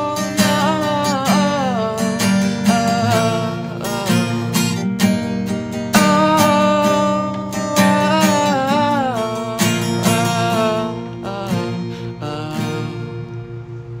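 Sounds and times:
acoustic guitar strumming: 0:00.0 - 0:14.0.

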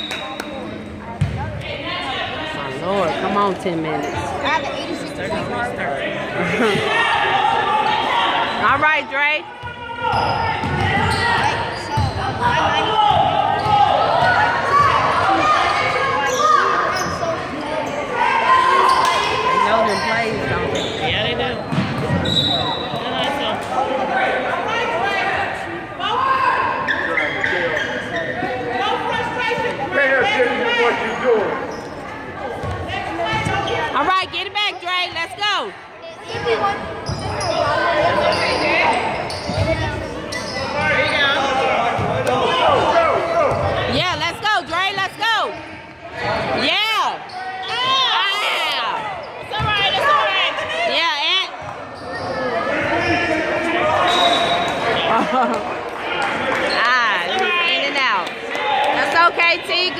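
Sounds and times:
sneakers squeaking on court: 0:00.0 - 0:01.6, 0:03.8 - 0:05.5, 0:08.5 - 0:14.3, 0:18.9 - 0:23.1, 0:30.9 - 0:34.0, 0:36.3 - 0:42.2, 0:51.6 - 0:53.4.

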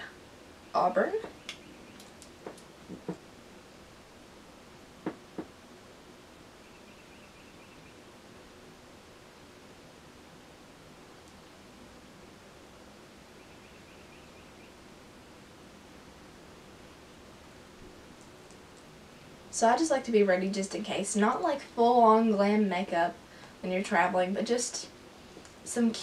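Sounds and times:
faint high chirping: 0:06.6 - 0:08.1, 0:13.3 - 0:14.9.

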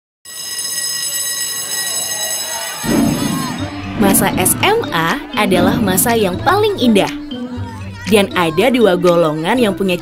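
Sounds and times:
electric alarm bell ringing: 0:00.3 - 0:06.4.

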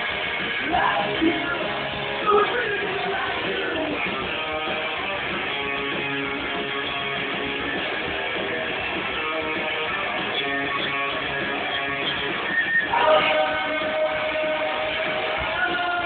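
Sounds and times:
rock band playing live: 0:00.0 - 0:16.0
strummed electric guitar: 0:00.0 - 0:16.0.

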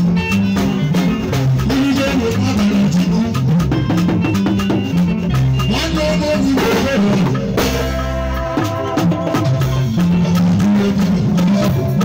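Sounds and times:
bass line: 0:00.0 - 0:12.0
fast drum and percussion beat: 0:00.0 - 0:12.0.

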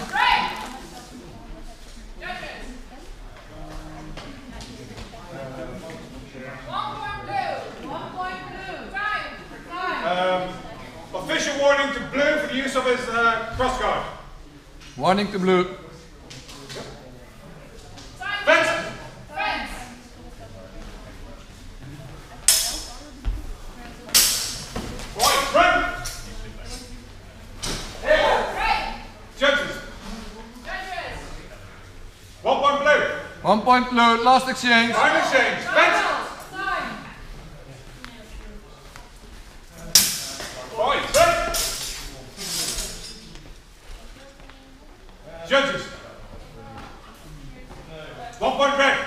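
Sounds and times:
loud shouts: 0:00.0 - 0:00.8
steel swords clashing: 0:22.5 - 0:22.9, 0:24.1 - 0:24.7, 0:39.9 - 0:43.2.

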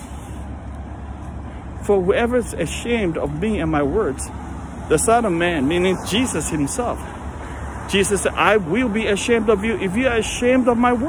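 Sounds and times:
low street rumble: 0:00.0 - 0:11.0
man's voice: 0:01.8 - 0:11.0.

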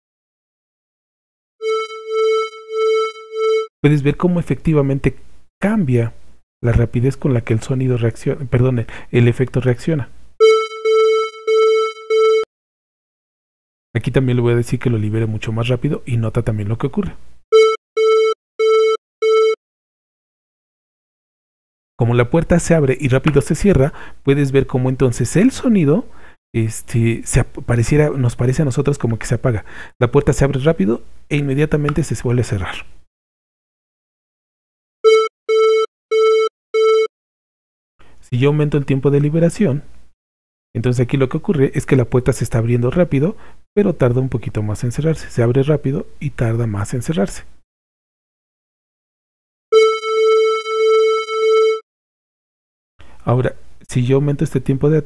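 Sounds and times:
pulsing electronic tone: 0:01.6 - 0:03.7.

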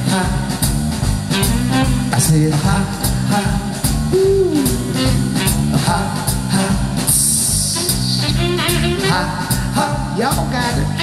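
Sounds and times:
blues band playing live: 0:00.0 - 0:11.0
saxophone: 0:01.3 - 0:10.2
singer shouting: 0:04.1 - 0:05.4.

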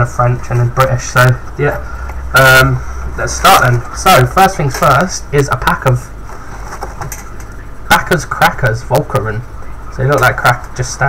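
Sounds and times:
faint room hiss: 0:00.0 - 0:11.0
low electrical hum: 0:00.0 - 0:11.0.

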